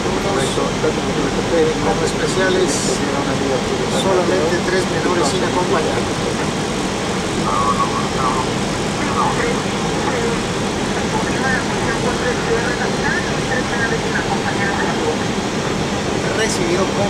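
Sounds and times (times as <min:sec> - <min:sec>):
faint voices: 0:00.0 - 0:17.0.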